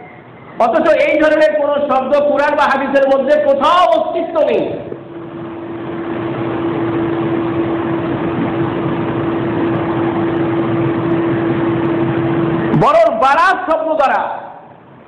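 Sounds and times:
steady rushing noise: 0:00.0 - 0:15.0
speech: 0:00.6 - 0:04.9, 0:12.7 - 0:14.6
low hum: 0:01.5 - 0:13.2.

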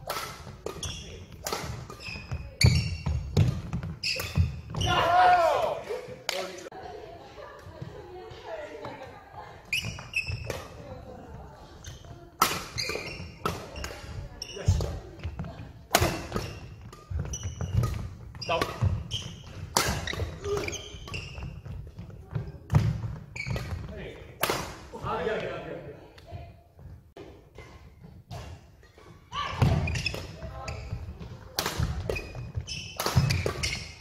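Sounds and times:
rackets hitting shuttlecock: 0:00.0 - 0:05.1, 0:08.9 - 0:10.9, 0:11.8 - 0:24.9, 0:27.2 - 0:34.0.

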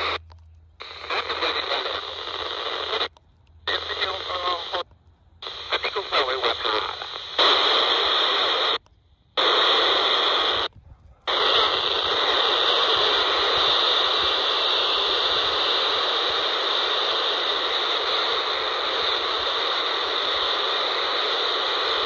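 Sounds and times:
heavy radio hiss: 0:00.0 - 0:00.2, 0:00.8 - 0:22.0
radio voice transmissions: 0:00.0 - 0:00.2, 0:00.8 - 0:08.8, 0:09.4 - 0:22.0.

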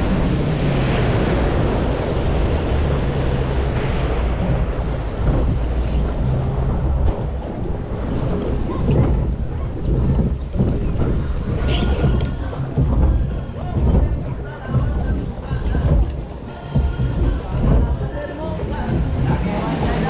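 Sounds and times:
water rushing and splashing: 0:00.0 - 0:20.0
water swirling along a boat hull: 0:00.0 - 0:20.0
wind rumble on microphone: 0:00.0 - 0:20.0.

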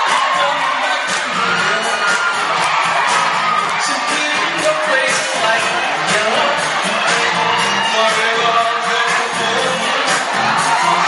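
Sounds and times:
audience cheering loudly: 0:00.0 - 0:11.0
live pop music over pa: 0:00.0 - 0:11.0.

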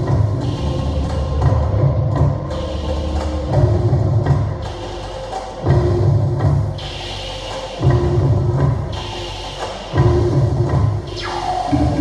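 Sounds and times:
drum-led music: 0:00.0 - 0:12.0.

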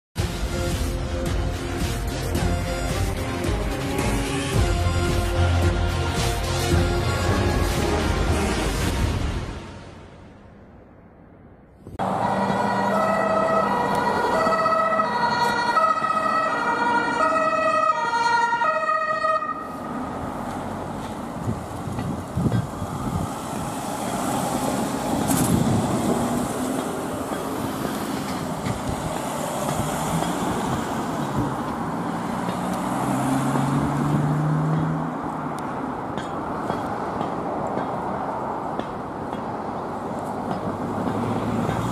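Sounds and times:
vehicle engine and tyres passing: 0:02.9 - 0:41.9
two-tone emergency horn: 0:04.2 - 0:08.6, 0:12.0 - 0:19.8.

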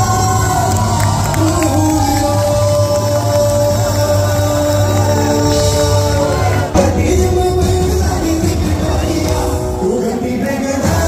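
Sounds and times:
live band with singer: 0:00.0 - 0:11.0.

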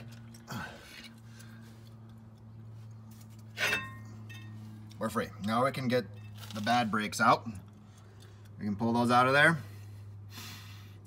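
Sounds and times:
sharp metallic clink: 0:03.6 - 0:04.6.

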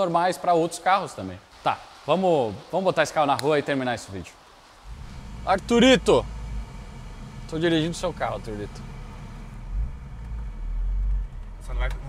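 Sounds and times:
car engine rumble inside cabin: 0:04.8 - 0:12.0.

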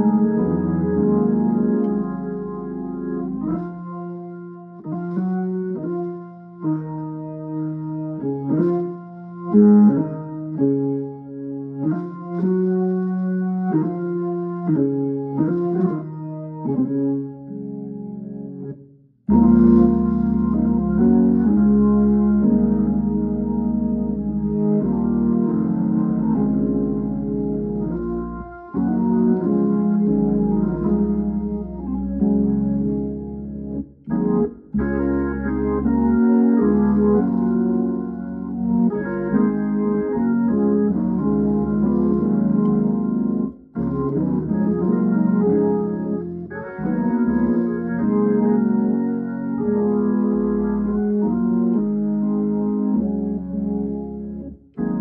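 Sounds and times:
deep bass line: 0:00.0 - 0:06.8, 0:14.7 - 0:55.0
organ playing hymn chords: 0:00.0 - 0:55.0.

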